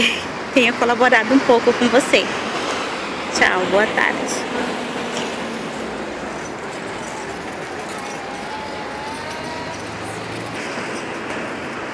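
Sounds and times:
traffic hum: 0.0 - 11.9.

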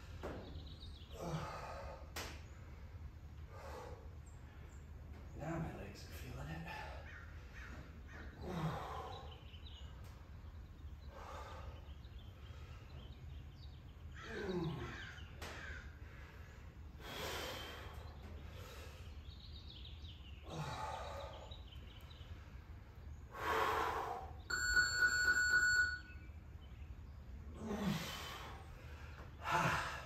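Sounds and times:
breathy exhales: 23.3 - 24.4.

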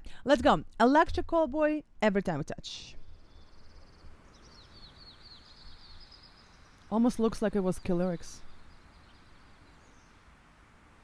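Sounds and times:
birdsong trills and chirps: 3.0 - 10.4.

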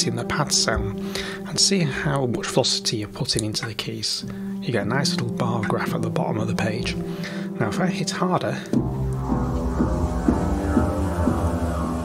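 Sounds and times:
synthesizer low sustained tone: 8.8 - 12.0.

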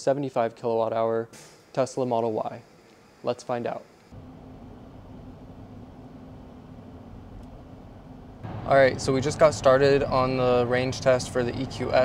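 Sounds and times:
faint steady hum: 0.0 - 12.0
road and tyre rumble: 6.8 - 12.0.

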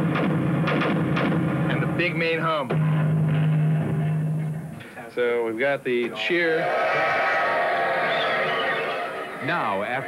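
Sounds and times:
crowd cheering: 6.2 - 10.0.

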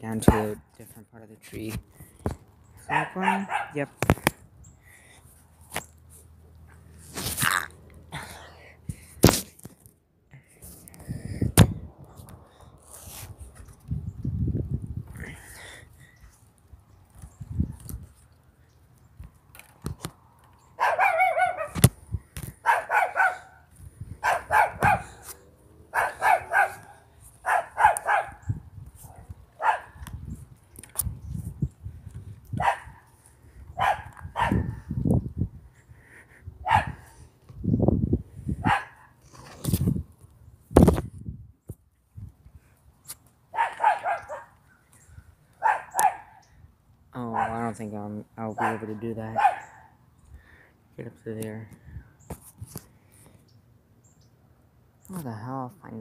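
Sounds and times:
dog barking: 2.9 - 3.9, 20.8 - 21.8, 22.6 - 23.6, 24.2 - 25.2, 25.9 - 28.4, 29.6 - 30.0, 32.6 - 33.0, 33.8 - 34.8, 36.6 - 37.0, 38.6 - 39.1, 43.6 - 44.6, 45.6 - 46.4, 47.3 - 47.6, 48.6 - 50.0.

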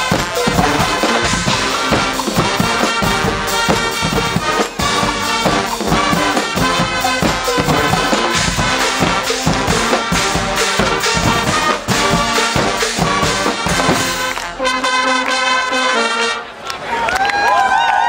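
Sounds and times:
steady drum beat: 0.0 - 14.7
brass instruments playing: 0.0 - 16.7.

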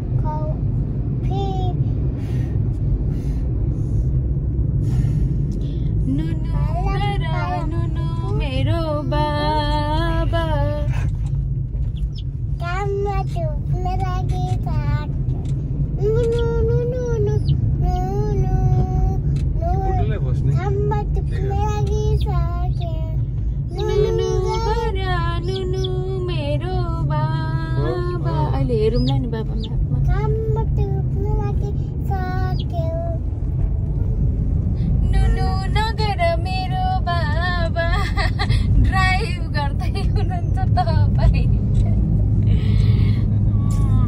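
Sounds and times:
car road and engine rumble: 0.0 - 44.0
young child singing: 12.6 - 15.1, 16.0 - 20.0, 20.6 - 26.3, 30.0 - 33.2.

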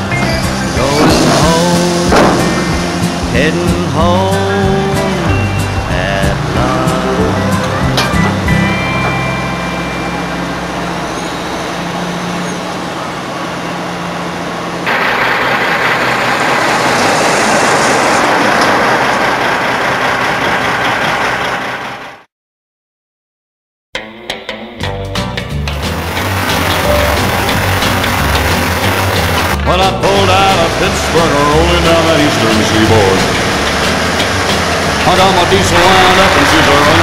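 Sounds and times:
country song chords: 0.0 - 11.1, 24.0 - 37.0
truck driving past: 0.0 - 22.3, 25.6 - 37.0.

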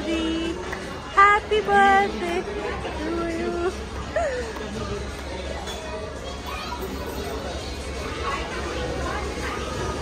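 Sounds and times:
background voices chatter: 0.0 - 10.0.

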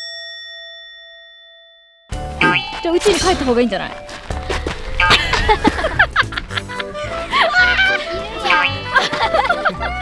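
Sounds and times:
bell-like chime ringing: 0.0 - 4.2.

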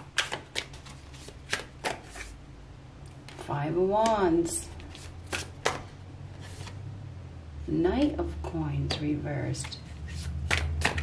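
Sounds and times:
cards rustling: 0.0 - 2.4, 3.2 - 6.8, 9.6 - 11.0
card snaps: 1.4 - 2.1, 5.3 - 5.9.

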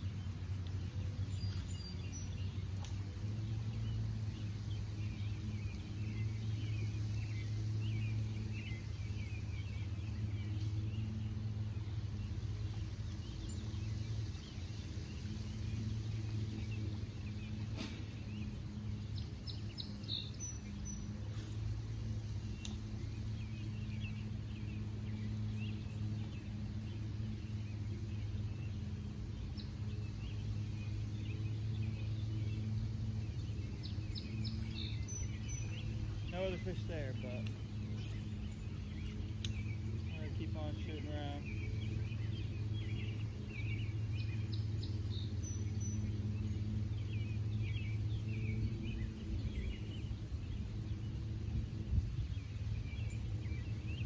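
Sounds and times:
faint bird chirps: 0.0 - 51.3
low mechanical hum: 0.0 - 54.0.

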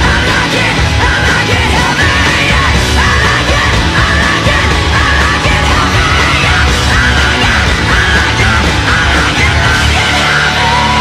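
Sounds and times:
loud hard rock music: 0.0 - 11.0.

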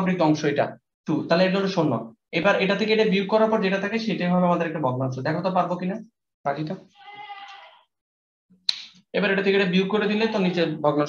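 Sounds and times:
goat or sheep bleat: 7.0 - 7.9.

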